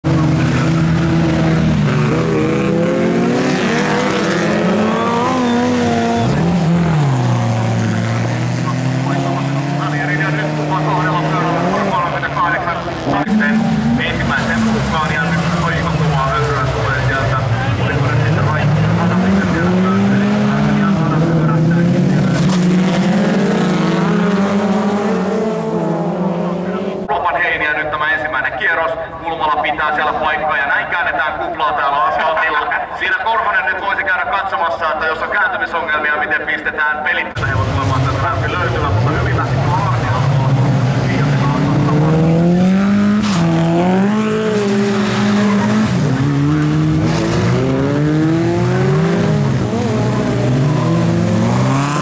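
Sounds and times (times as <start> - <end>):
race car engines revving: 0.0 - 52.0.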